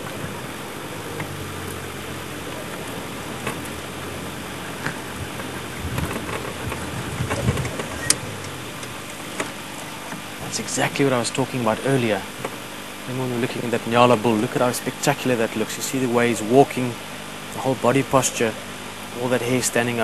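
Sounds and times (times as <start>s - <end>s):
steady hiss: 0.0s - 20.0s
vehicle engine idling: 0.0s - 20.0s.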